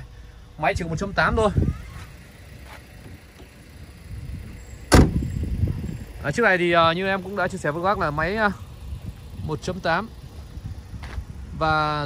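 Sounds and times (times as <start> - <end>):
car door slamming: 4.8 - 5.4.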